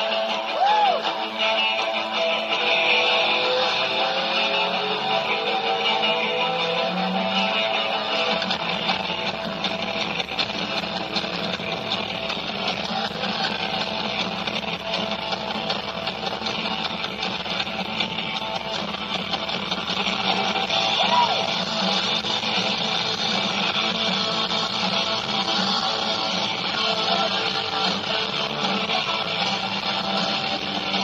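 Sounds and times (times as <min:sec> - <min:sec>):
live rock band: 0:00.0 - 0:31.0.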